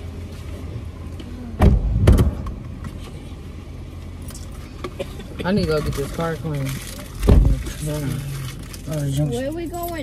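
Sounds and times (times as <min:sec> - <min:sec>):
car door shutting: 0:01.6 - 0:03.0.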